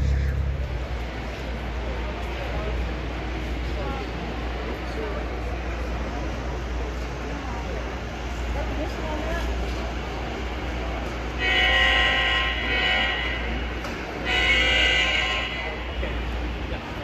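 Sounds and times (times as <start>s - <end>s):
model locomotive horn blasts: 11.4s - 13.6s, 14.2s - 15.8s.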